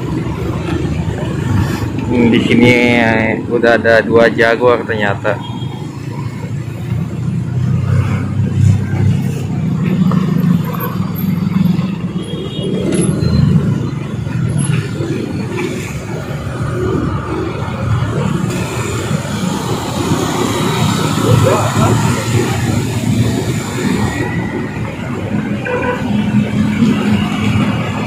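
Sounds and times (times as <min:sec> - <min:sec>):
motorcycle and scooter engines: 0:00.0 - 0:28.0
vehicles passing with engine rumble: 0:00.0 - 0:28.0.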